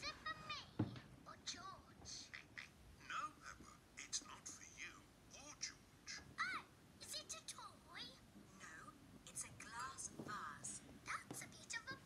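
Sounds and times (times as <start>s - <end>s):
cartoon dialogue through speakers: 0.0s - 12.0s.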